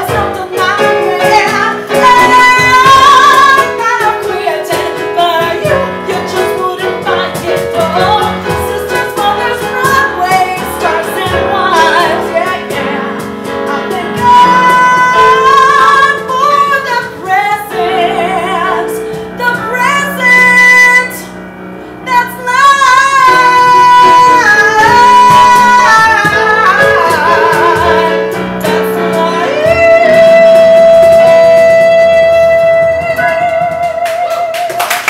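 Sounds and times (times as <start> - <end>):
woman singing with vibrato: 0.0 - 21.3, 22.0 - 35.0.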